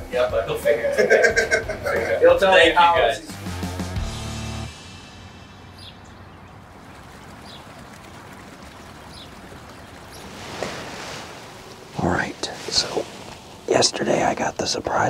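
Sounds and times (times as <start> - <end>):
faint bird chirps: 5.3 - 10.4
stream rushing: 5.6 - 14.8.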